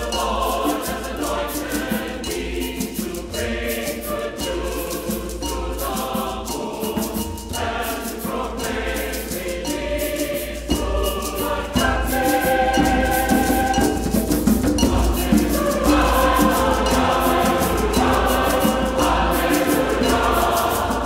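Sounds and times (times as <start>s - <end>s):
choir and congregation singing: 0.0s - 21.0s
instrumental accompaniment: 0.0s - 21.0s
light percussion beat: 0.0s - 21.0s.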